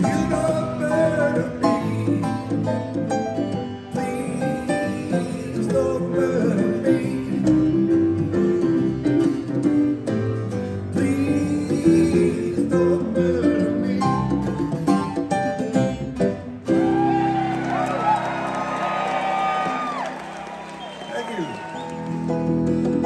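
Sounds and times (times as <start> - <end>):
man singing into microphone: 0.0 - 8.2, 10.8 - 16.4
acoustic guitar: 0.0 - 20.2, 21.8 - 23.0.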